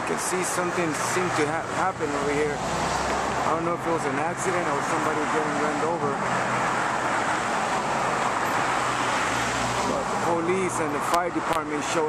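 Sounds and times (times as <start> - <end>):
cars driving past: 0.0 - 12.0.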